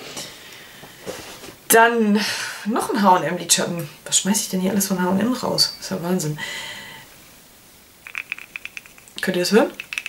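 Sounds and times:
eyeshadow rattling in plastic compact: 0:08.1 - 0:09.1, 0:09.7 - 0:10.0.

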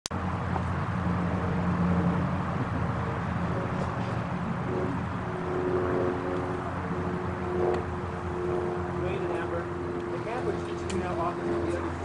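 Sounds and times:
low outdoor rumble: 0:00.1 - 0:12.0.

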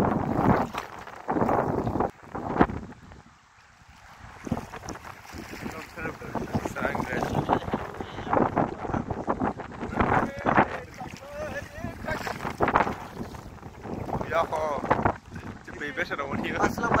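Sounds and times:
water splashing: 0:00.0 - 0:17.0
wind buffeting microphone: 0:00.0 - 0:17.0.

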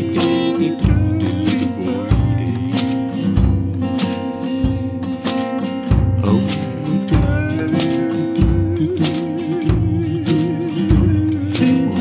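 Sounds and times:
acoustic guitar strumming: 0:00.0 - 0:12.0
steady low beat: 0:00.0 - 0:12.0.

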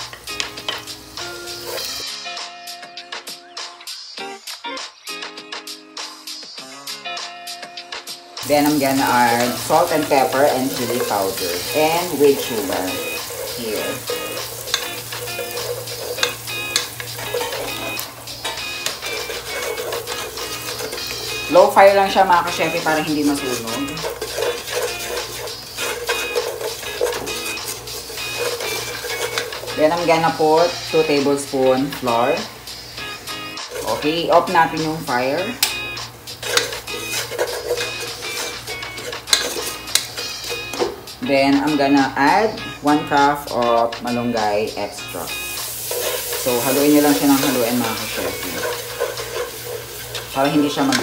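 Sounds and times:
garlic and onion sizzling in oil: 0:00.0 - 0:02.3, 0:08.4 - 0:51.0
background music: 0:00.0 - 0:51.0
wooden spatula scraping pot: 0:08.4 - 0:31.0, 0:33.6 - 0:35.0, 0:36.3 - 0:41.0, 0:45.7 - 0:51.0.

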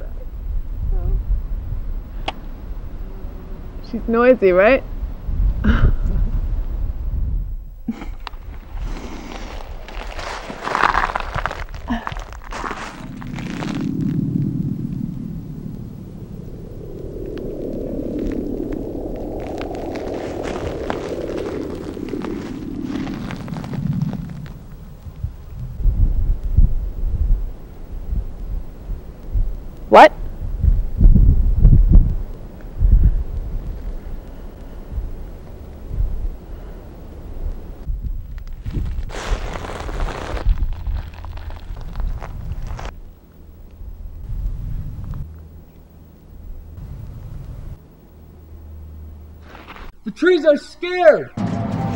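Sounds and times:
deep rumble: 0:00.0 - 0:50.1
rustling whoosh: 0:08.3 - 0:27.2.

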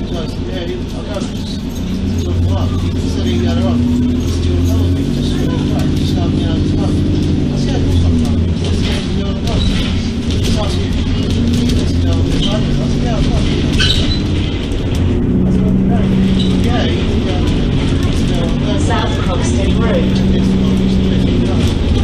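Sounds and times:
bus engine drone: 0:00.0 - 0:22.0
passengers' voices: 0:00.0 - 0:22.0.

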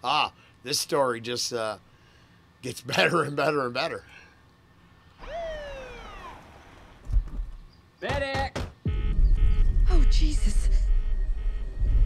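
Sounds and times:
pitched call sliding downward: 0:05.2 - 0:06.9
low rumble: 0:08.9 - 0:12.0.

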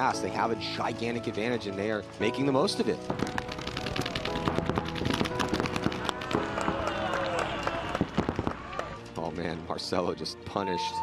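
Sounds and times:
background music: 0:00.0 - 0:11.0
paintball marker pops: 0:03.1 - 0:06.7.

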